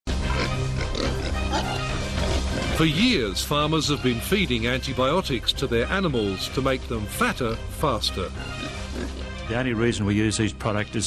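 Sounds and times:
pigs grunting and squealing: 0.1s - 2.9s, 7.4s - 9.4s
low background music: 0.1s - 11.0s.

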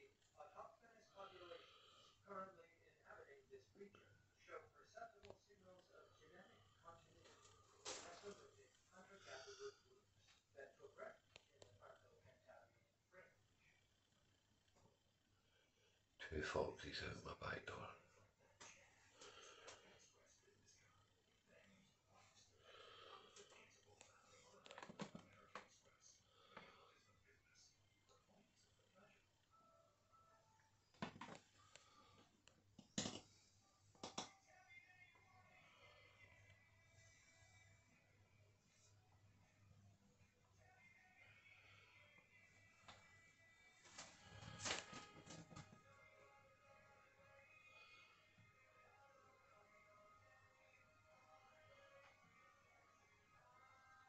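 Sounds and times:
faint whispering: 0.0s - 13.9s, 16.2s - 29.3s.

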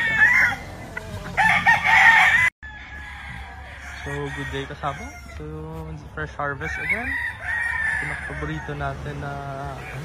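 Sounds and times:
rooster crowing: 0.0s - 5.4s, 6.6s - 10.0s.

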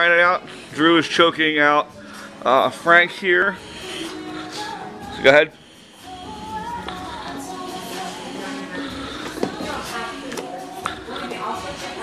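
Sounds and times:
background music: 0.0s - 12.0s
indistinct voices: 0.0s - 12.0s.

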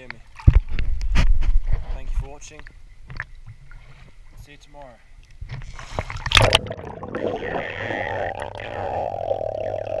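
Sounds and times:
muffled underwater pool noise: 6.0s - 10.0s.

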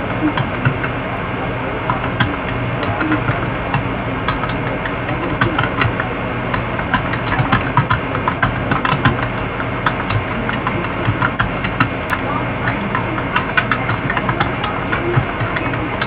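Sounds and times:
irregular clicks and crackles: 0.0s - 16.0s
low mechanical hum: 0.0s - 16.0s.

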